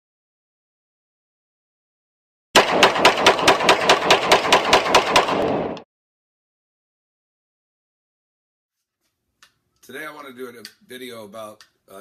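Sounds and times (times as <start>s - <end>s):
automatic gunfire: 2.6s - 5.8s.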